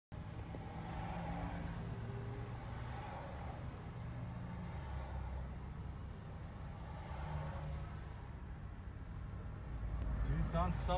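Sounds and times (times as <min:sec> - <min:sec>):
road traffic rumble inside car: 0:00.1 - 0:10.9.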